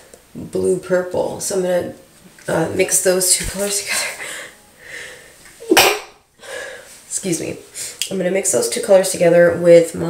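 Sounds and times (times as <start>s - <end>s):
woman sneezing: 5.6s - 6.1s.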